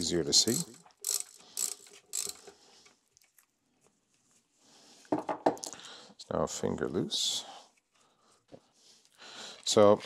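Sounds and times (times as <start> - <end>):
ratchet wrench clicking: 0.4 - 2.5.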